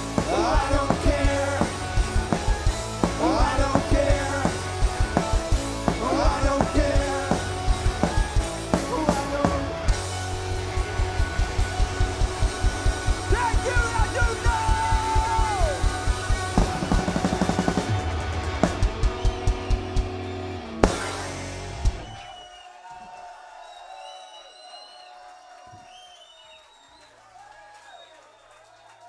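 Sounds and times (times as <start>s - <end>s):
fast kick-drum beat: 0.0s - 22.1s
pop-punk band playing live: 0.0s - 22.2s.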